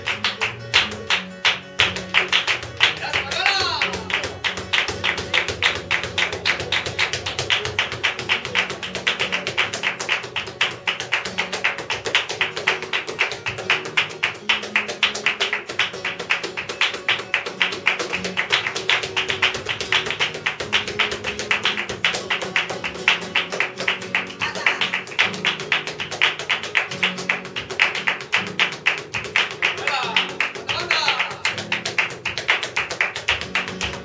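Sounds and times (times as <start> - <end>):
dancer's percussive footwork: 0.0 - 34.0
flamenco guitar playing: 0.0 - 34.0
hand claps: 0.0 - 34.0.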